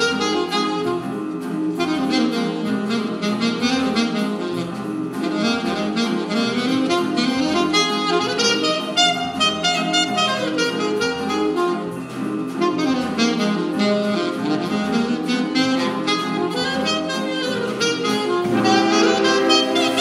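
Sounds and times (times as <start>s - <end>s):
jazz band playing: 0.0s - 20.0s
saxophone lead: 0.0s - 20.0s.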